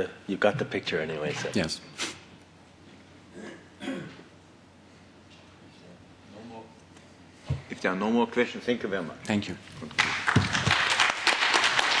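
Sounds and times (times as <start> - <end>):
audience applauding: 10.0 - 12.0.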